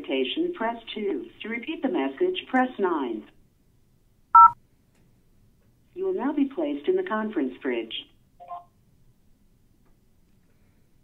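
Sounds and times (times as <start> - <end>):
two-pitch electronic beep: 4.4 - 4.6.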